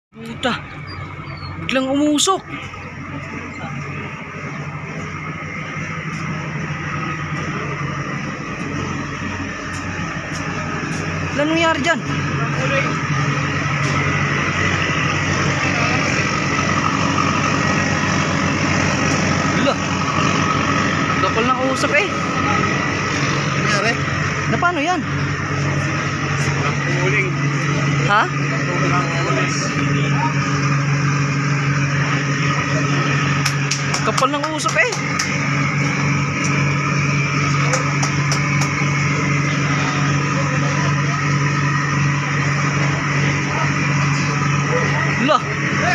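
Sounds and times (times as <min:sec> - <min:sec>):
ferry engines rumbling: 0:00.1 - 0:45.9.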